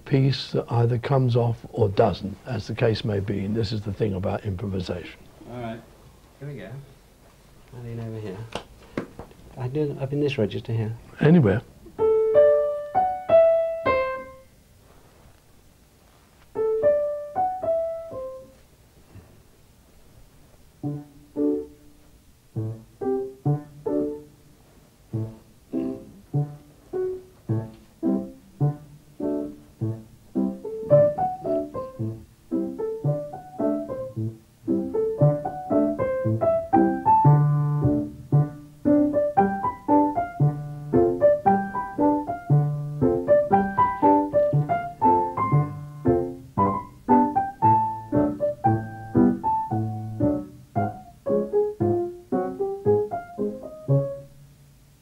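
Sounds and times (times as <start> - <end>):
grand piano notes: 9.6 - 14.5, 20.8 - 55.0
improvised piano piece: 9.6 - 14.6, 16.5 - 18.7, 20.5 - 55.0.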